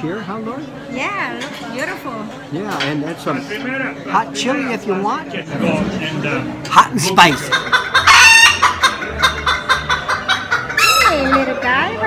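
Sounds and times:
rooster clucking: 7.0s - 12.0s.

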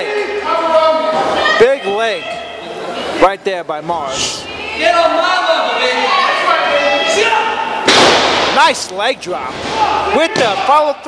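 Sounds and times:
voices: 0.0s - 7.9s.

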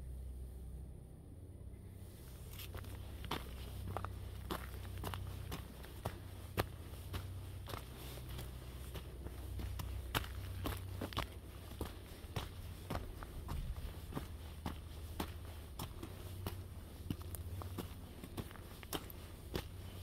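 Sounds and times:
steady low rumble: 0.0s - 20.0s
footsteps on forest trail: 2.2s - 20.0s.

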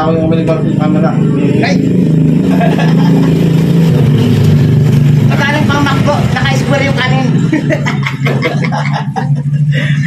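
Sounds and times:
motor engine humming: 0.0s - 10.0s.

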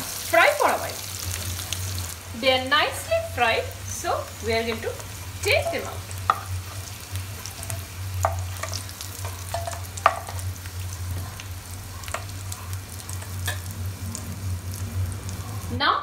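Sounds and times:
potatoes sizzling in oil: 0.0s - 16.0s
spoon scraping and clinking on pan: 7.6s - 10.4s.

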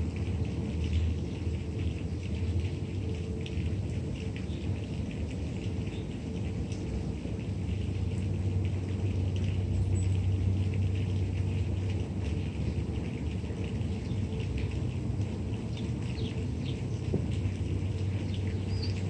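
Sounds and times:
low outdoor rumble: 0.0s - 19.0s
faint crackling ticks: 0.1s - 19.0s.

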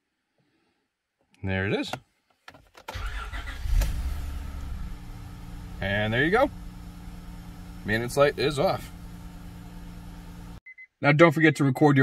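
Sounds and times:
car engine starting: 2.9s - 10.6s.

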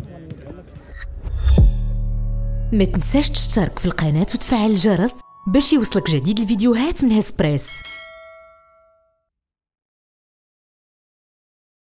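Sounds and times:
bell chime ding: 4.3s - 9.2s.

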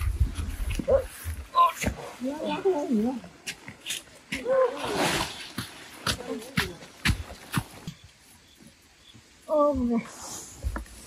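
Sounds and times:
footsteps on dirt path: 3.3s - 4.6s, 5.4s - 8.2s.

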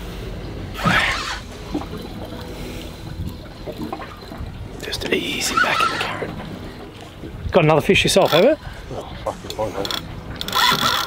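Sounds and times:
water lapping against boat hull: 0.2s - 11.0s.

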